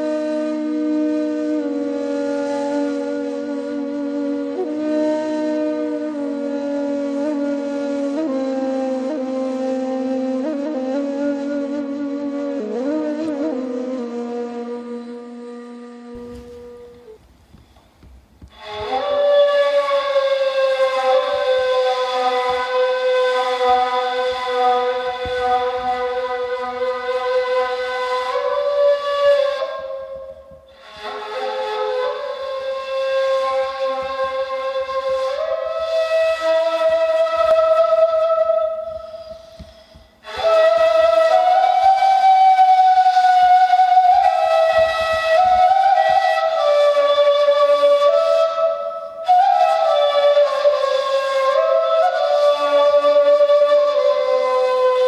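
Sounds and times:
end-blown reed flute solo: 0.0 - 17.2, 18.4 - 55.0.

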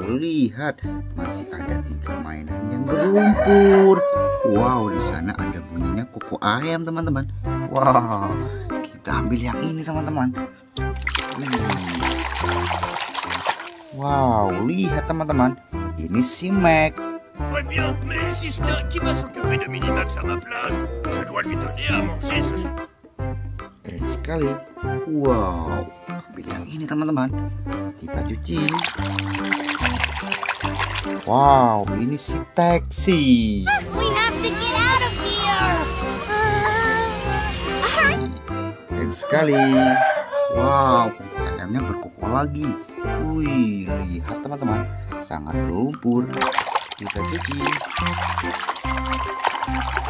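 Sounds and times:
background music: 0.0 - 50.0
hand splashing in water: 10.8 - 14.0, 28.5 - 31.6, 46.3 - 50.0
cartoon character voices: 17.6 - 22.7, 33.7 - 38.3.

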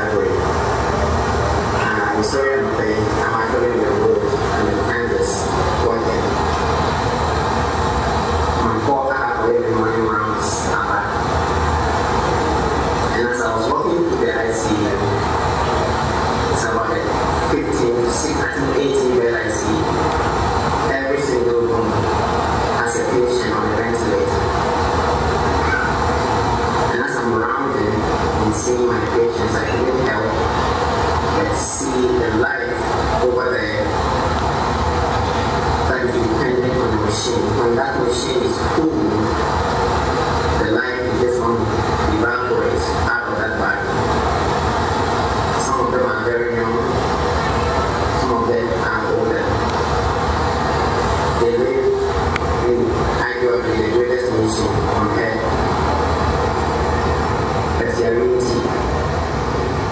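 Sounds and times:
steady low rumble: 0.0 - 59.9.

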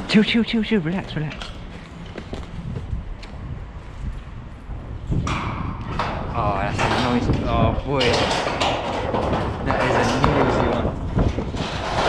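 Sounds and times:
footsteps over debris: 0.0 - 4.7
wind rumble on microphone: 0.0 - 12.0
microphone handling noise: 1.7 - 12.0.

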